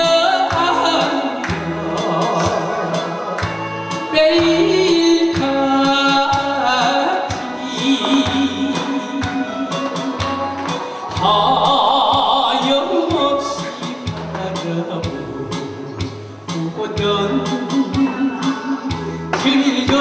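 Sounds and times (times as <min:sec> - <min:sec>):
man singing into a microphone: 0:00.0 - 0:03.4, 0:04.0 - 0:10.0, 0:10.9 - 0:20.0
backing track with drums and bass: 0:00.0 - 0:20.0.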